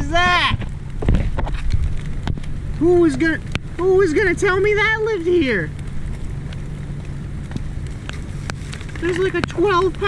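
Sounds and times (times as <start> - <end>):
heavy rain: 0.0 - 10.0
raindrops ticking close by: 0.0 - 10.0.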